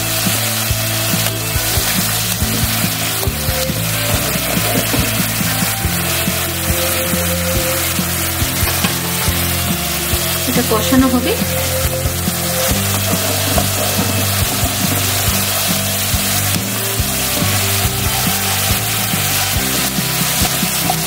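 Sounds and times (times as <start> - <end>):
fish sizzling in a wok: 0.0 - 21.0
wooden spatula scraping a pan: 7.8 - 18.5.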